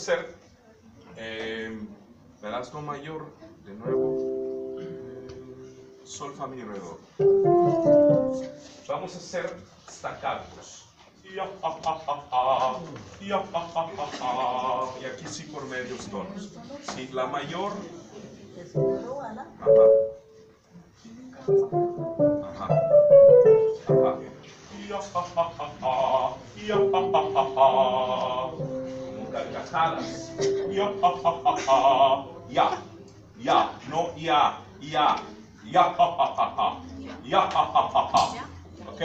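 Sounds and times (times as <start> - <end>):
piano chord and note runs: 3.9 - 5.8, 7.2 - 8.7, 21.5 - 24.4
keyboard playing piano notes: 3.9 - 6.1, 7.2 - 8.8, 18.8 - 20.5, 21.5 - 24.6, 26.7 - 31.6.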